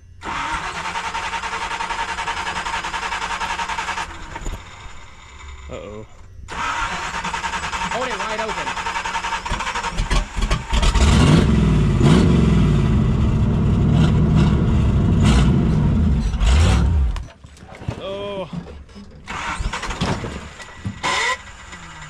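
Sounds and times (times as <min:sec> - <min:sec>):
engine revving under load: 0:06.5 - 0:17.3, 0:19.3 - 0:22.0.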